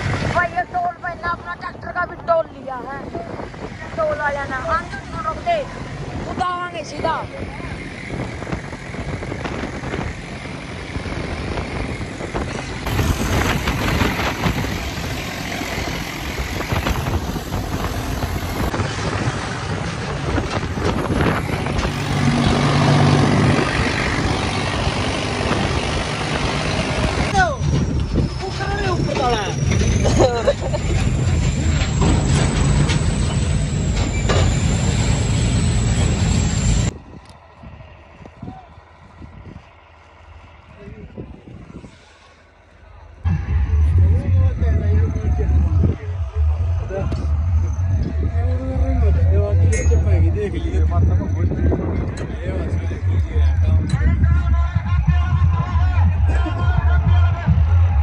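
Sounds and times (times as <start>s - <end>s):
wind rush on microphone: 0.0s - 31.8s, 36.9s - 42.4s, 43.3s - 58.0s
tractor engine running: 5.3s - 41.8s.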